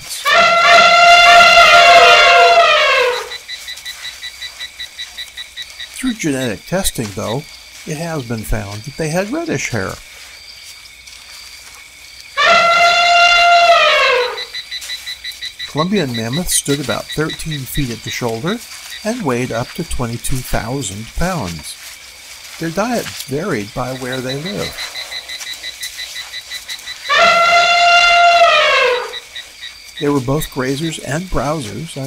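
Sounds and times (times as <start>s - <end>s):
elephant trumpeting: 0.0s - 3.5s, 12.4s - 14.7s, 23.8s - 25.6s, 26.7s - 29.4s.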